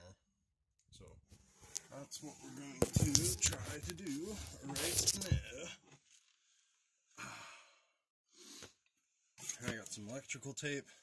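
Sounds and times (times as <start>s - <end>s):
man sighing: 7.2s - 7.8s.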